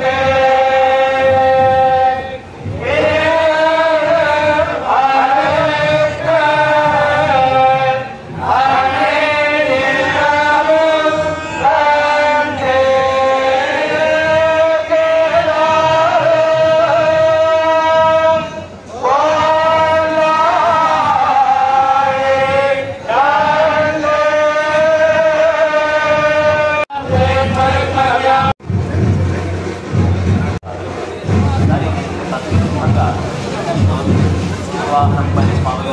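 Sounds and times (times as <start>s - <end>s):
devotional chanting: 0.0s - 35.9s.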